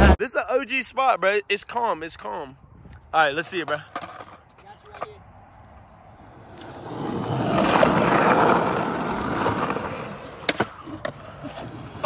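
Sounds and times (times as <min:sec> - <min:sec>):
skateboard wheels rolling on concrete: 0:02.6 - 0:12.0
skateboard clacking: 0:03.6 - 0:05.2, 0:06.5 - 0:12.0.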